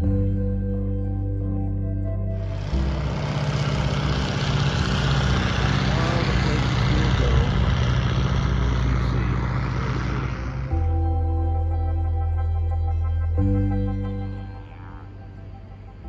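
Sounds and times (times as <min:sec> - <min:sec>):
propeller engine drone: 0:01.5 - 0:16.0
loud rush of noise: 0:02.4 - 0:10.9.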